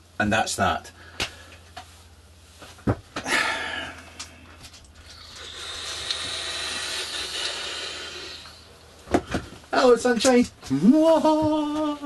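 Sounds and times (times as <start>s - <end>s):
electronic cigarette draw hiss: 5.2s - 8.7s.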